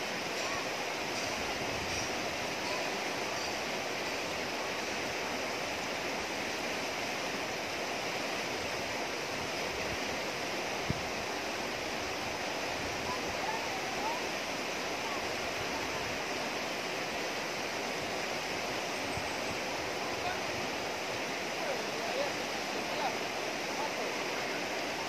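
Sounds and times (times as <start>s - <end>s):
river rapids rushing over rocks: 0.0s - 25.0s.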